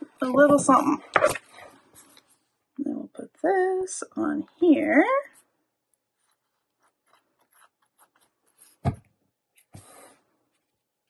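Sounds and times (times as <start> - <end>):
paper rustling and rubbing: 6.1 - 8.9.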